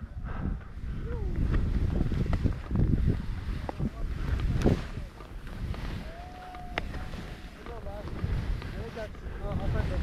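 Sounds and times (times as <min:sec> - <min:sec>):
wind buffeting microphone: 0:00.0 - 0:10.0
skis cutting snow: 0:01.3 - 0:10.0.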